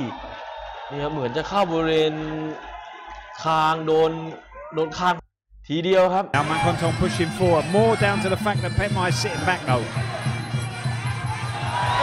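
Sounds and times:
male commentator speaking: 3.4 - 10.1.

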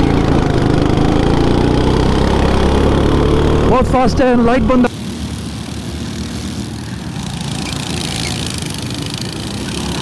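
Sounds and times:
go-kart engines running: 0.0 - 10.0.

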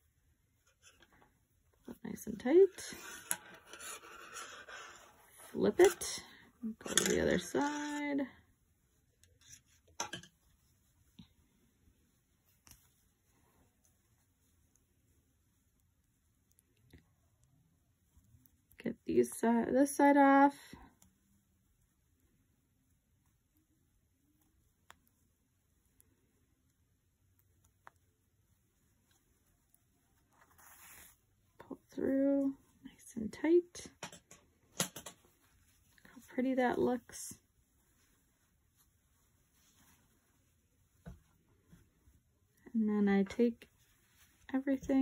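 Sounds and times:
metal knitting needles clicking: 6.8 - 8.2.

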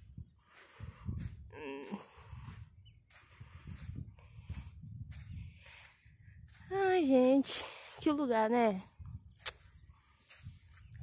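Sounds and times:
wind buffeting microphone: 0.0 - 11.0
woman speaking: 6.6 - 8.9.

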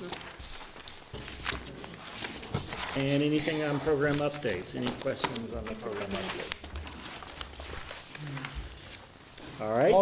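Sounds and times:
shuffling and rustling: 0.0 - 10.0.

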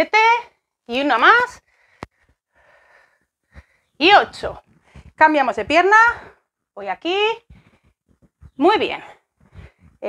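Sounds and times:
woman breathing with exertion: 1.6 - 4.0, 7.5 - 8.0, 9.1 - 10.0.

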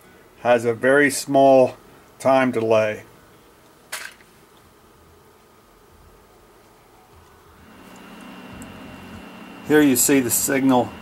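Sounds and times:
low electronics hum: 4.5 - 11.0
thin high-pitched whine: 7.6 - 11.0.

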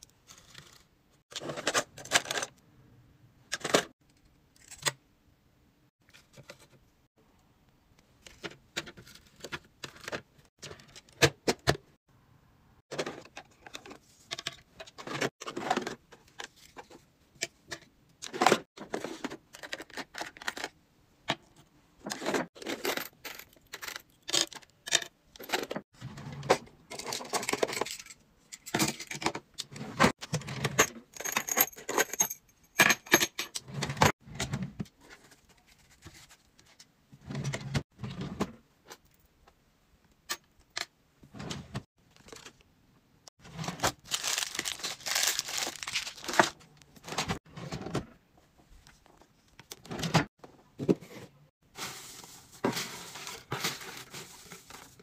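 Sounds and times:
plastic items clicking: 43.8 - 46.6.

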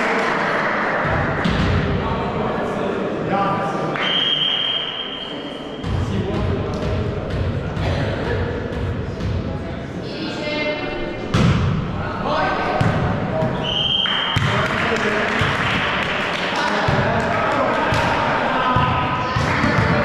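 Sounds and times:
players and spectators voices: 0.0 - 20.0
referee's whistle: 4.0 - 5.4, 13.6 - 14.4.

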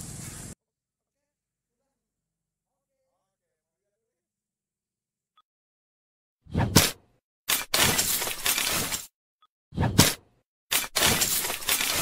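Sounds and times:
glass shattering: 10.7 - 12.0.

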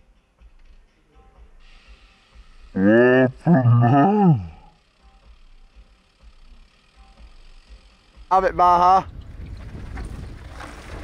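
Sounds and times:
wind rumbling on microphone: 8.8 - 11.0
bike tyres skidding on dirt: 9.1 - 11.0.

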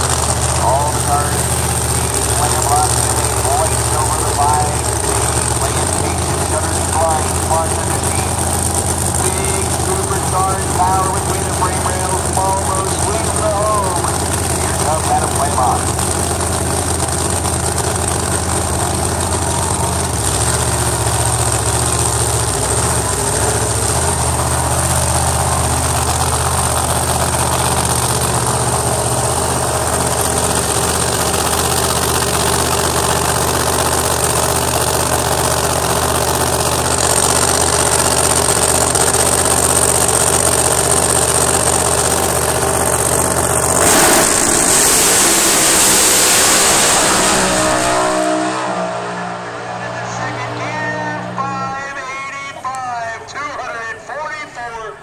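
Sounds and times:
race car engine running: 0.0 - 55.0
car launching at full throttle: 43.6 - 50.4.

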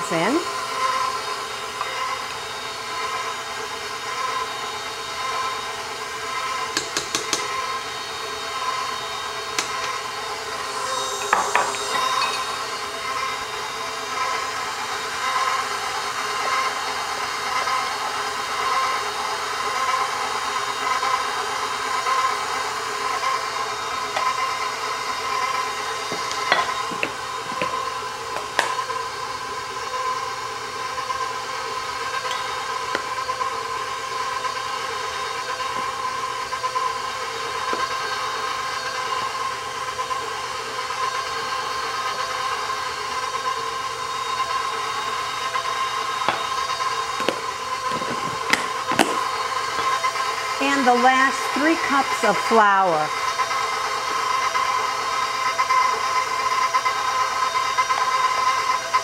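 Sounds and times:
stand mixer motor whining: 0.0 - 59.0.

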